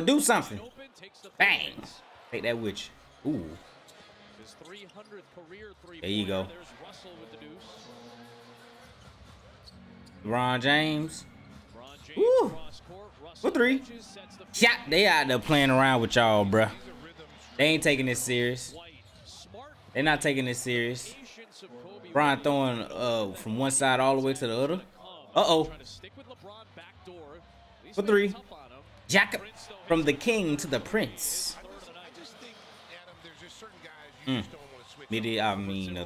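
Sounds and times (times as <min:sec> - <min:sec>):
commentator speaking: 0:00.0 - 0:03.6, 0:05.7 - 0:07.4, 0:11.9 - 0:18.9, 0:19.9 - 0:26.4, 0:28.0 - 0:32.5, 0:33.1 - 0:36.0
arena crowd noise: 0:00.0 - 0:36.0.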